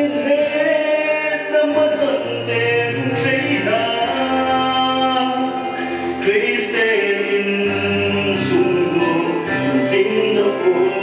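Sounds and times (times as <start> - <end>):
slow song with held sung notes: 0.0 - 11.0.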